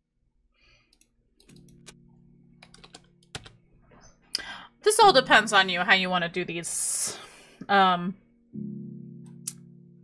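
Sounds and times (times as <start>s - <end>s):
keyboard and mouse clicking: 2.6s - 3.6s.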